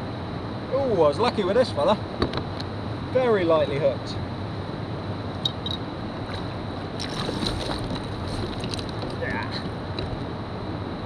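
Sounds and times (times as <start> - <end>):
steady wind: 0.0 - 11.0
water around a kayak: 6.0 - 10.4.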